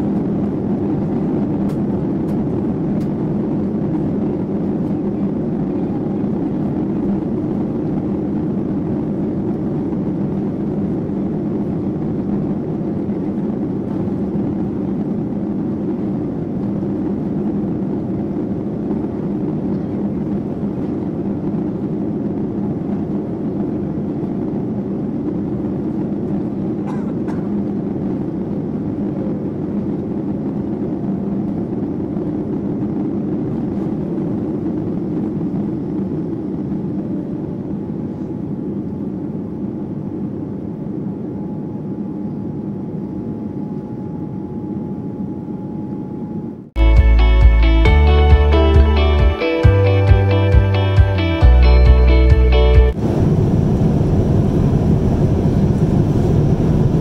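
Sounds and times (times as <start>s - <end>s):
faint steady whine: 0.0s - 46.8s
jet engines at takeoff thrust: 0.0s - 46.8s, 52.9s - 57.0s.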